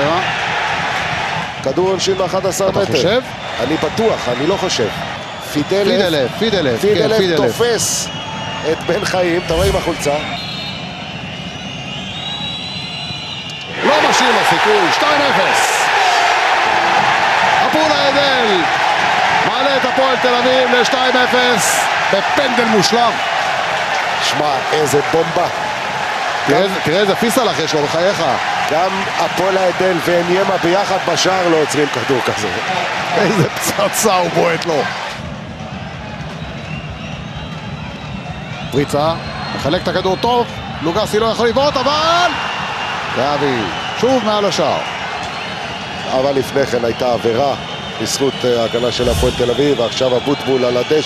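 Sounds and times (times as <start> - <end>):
crowd roaring: 0.0 - 1.6, 9.4 - 11.2, 13.7 - 31.5, 48.8 - 50.4
stadium crowd din: 0.0 - 51.0
whistling: 5.0 - 6.2, 7.5 - 14.4, 36.4 - 40.6, 42.4 - 51.0
low rumble: 49.0 - 49.8.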